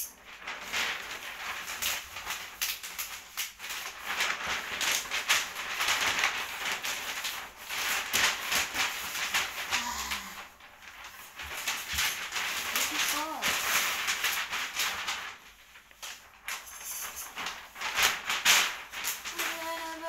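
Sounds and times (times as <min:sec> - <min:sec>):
wrapping paper rustling and crinkling: 0:00.0 - 0:20.0.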